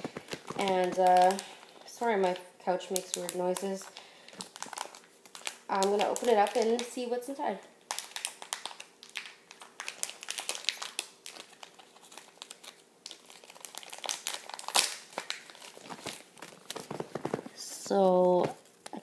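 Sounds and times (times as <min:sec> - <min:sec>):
packaging crinkling and rustling: 0:00.0 - 0:07.0, 0:07.9 - 0:19.0.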